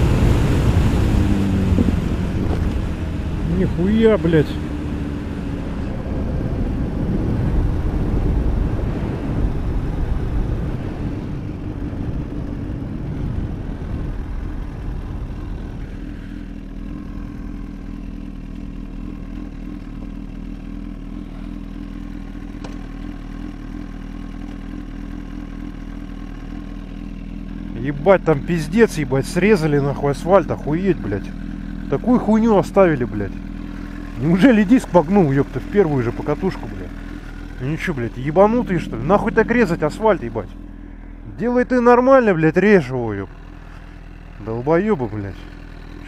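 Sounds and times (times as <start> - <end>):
wind noise: 0.0 - 3.2, 5.8 - 15.9
motorcycle engine: 0.0 - 46.0.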